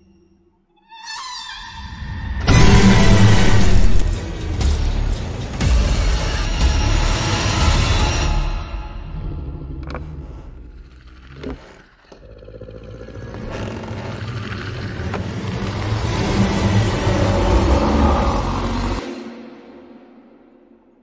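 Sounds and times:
deep rumbling swell: 0:14.1 - 0:21.0.

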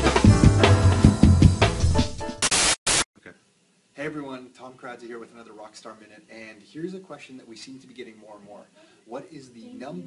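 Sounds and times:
intro music with drum hits: 0:00.0 - 0:02.8
static noise bursts: 0:02.4 - 0:08.4.

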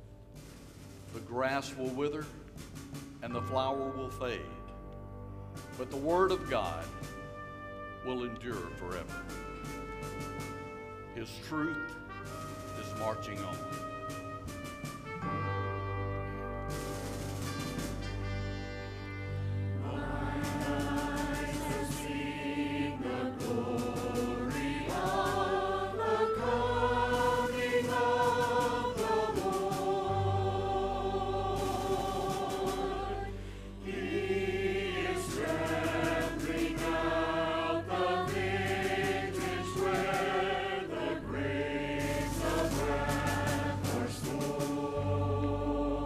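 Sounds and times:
low accompaniment: 0:00.0 - 0:46.0
church choir singing: 0:19.3 - 0:46.0.

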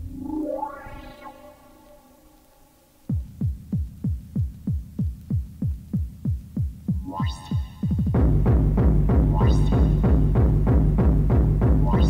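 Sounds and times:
rising synth sweep: 0:00.0 - 0:03.1
dense hardcore techno track: 0:03.1 - 0:12.0
pounding kick drum: 0:03.1 - 0:12.0.

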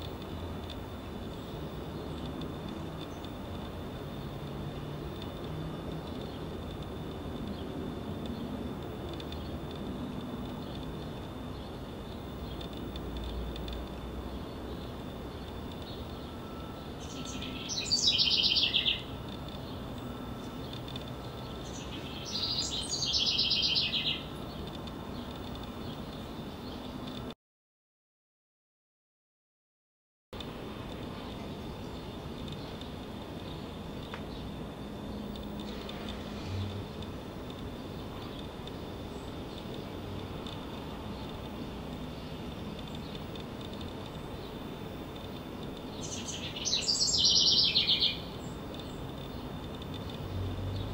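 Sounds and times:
wren singing: 0:00.0 - 0:27.2, 0:30.9 - 0:50.9.

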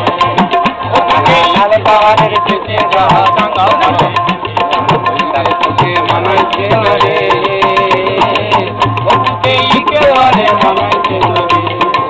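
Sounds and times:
man singing: 0:00.0 - 0:12.0
tabla and hand drums: 0:00.0 - 0:12.0.

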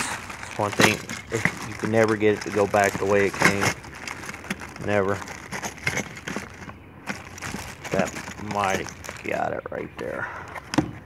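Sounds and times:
plastic bags crinkling: 0:00.0 - 0:09.5.

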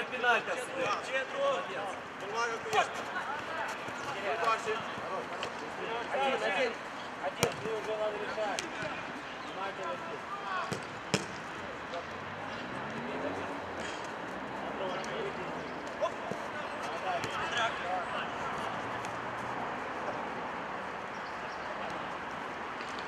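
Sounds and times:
players calling and shouting: 0:00.0 - 0:23.0
ball being kicked: 0:10.7 - 0:11.4.

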